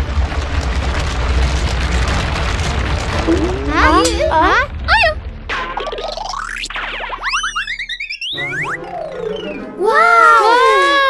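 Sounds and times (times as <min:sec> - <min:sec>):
rising chirps: 0:06.3 - 0:09.8
cartoon whistle glide: 0:07.1 - 0:10.0.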